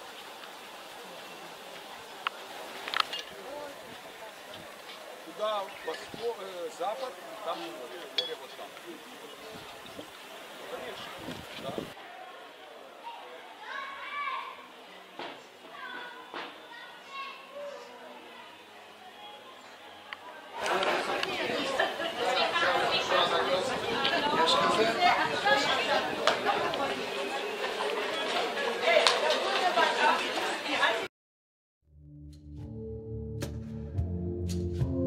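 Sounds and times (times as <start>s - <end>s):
children chattering: 0.8s - 31.1s.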